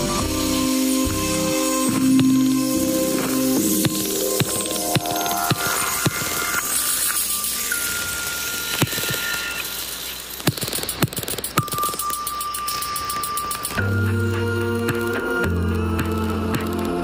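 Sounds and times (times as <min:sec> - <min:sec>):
deep bass and chords: 0:00.0 - 0:05.8
long thin held tones: 0:00.0 - 0:10.4, 0:11.5 - 0:16.5
hissing wash of noise: 0:00.0 - 0:11.6
scattered clicks: 0:03.1 - 0:17.0.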